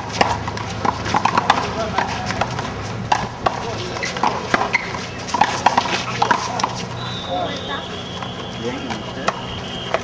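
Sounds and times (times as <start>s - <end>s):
players' footsteps: 0.0s - 10.0s.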